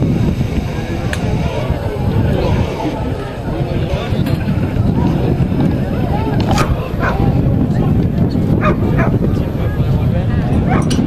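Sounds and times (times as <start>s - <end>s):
wind rumble on microphone: 0.0s - 11.0s
dog barking: 6.6s - 7.2s, 8.6s - 9.2s.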